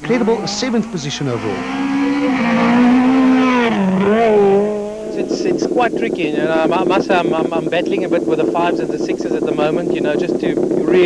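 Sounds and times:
rally car engine at high revs: 0:00.0 - 0:11.0.

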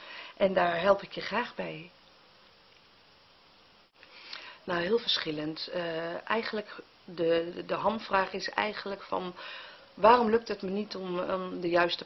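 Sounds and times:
faint room tone hiss: 0:00.0 - 0:12.0.

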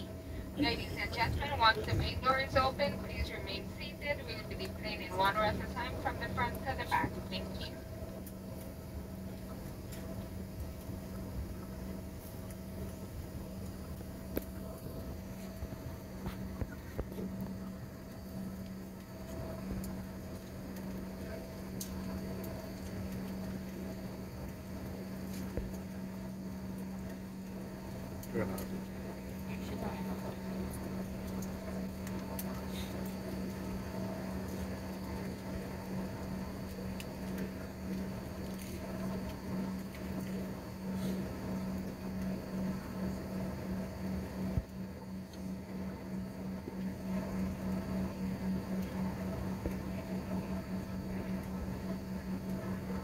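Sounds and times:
low rumble: 0:00.0 - 0:08.2
airliner cabin hum: 0:00.0 - 0:53.0.

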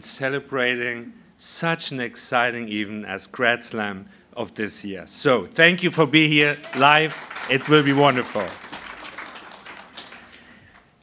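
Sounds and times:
light scattered applause: 0:06.4 - 0:11.0.

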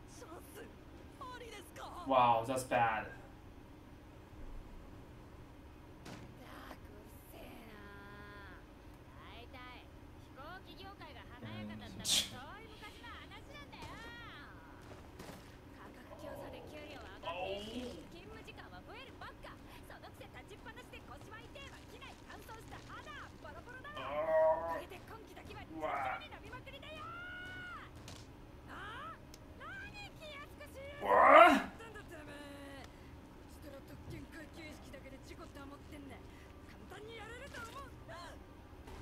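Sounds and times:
character speaking: 0:11.2 - 0:14.5, 0:15.8 - 0:18.5, 0:20.3 - 0:27.9
person talking: 0:15.9 - 0:18.5, 0:21.1 - 0:27.2
person shouting: 0:17.2 - 0:17.9, 0:24.0 - 0:24.9, 0:25.7 - 0:26.3, 0:31.0 - 0:31.8.

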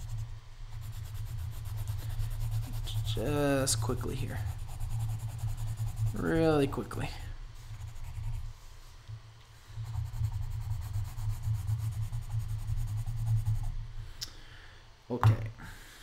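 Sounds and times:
colored pencil scratching on paper: 0:00.0 - 0:08.6, 0:09.8 - 0:13.8.

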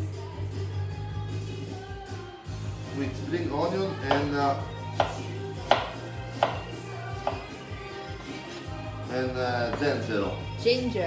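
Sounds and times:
background music: 0:00.0 - 0:11.0
knife chopping on cutting board: 0:04.0 - 0:07.5, 0:09.7 - 0:10.0.

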